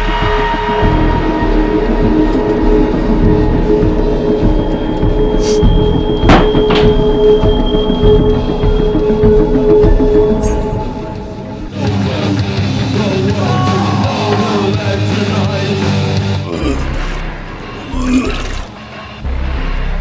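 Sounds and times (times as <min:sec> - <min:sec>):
droning soundtrack music: 0:00.0 - 0:20.0.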